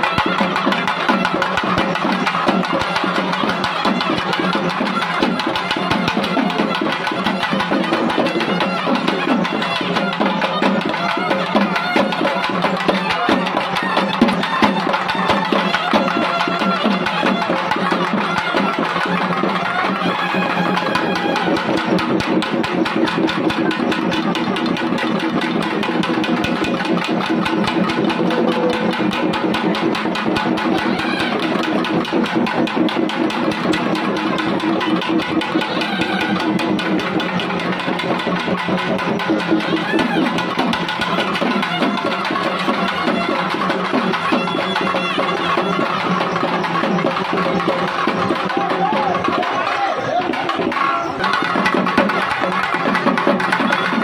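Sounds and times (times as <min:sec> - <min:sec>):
barrel drums beaten fast: 0:00.0 - 0:54.0.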